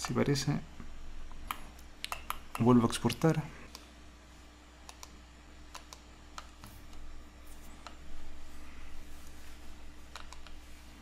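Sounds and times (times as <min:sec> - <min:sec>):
low steady hum: 0:00.0 - 0:11.0
mouse and keyboard clicks: 0:04.9 - 0:07.0, 0:10.1 - 0:10.6.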